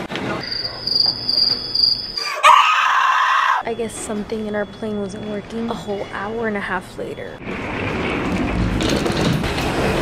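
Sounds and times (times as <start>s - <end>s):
suitcase wheels rumbling and rattling: 7.4s - 10.0s.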